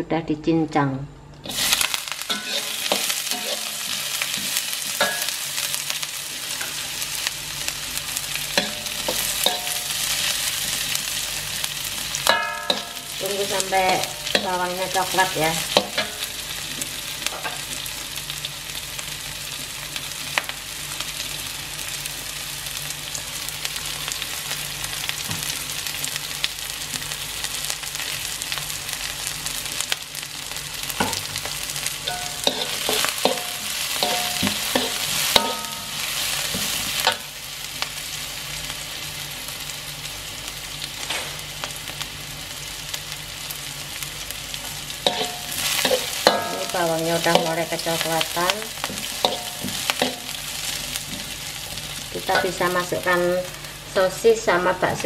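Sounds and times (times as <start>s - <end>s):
metal spatula scraping a wok: 1.4s - 5.6s, 8.4s - 11.2s, 32.0s - 37.3s, 45.0s - 47.6s, 48.8s - 52.6s
garlic and onion sizzling in oil: 1.4s - 55.0s.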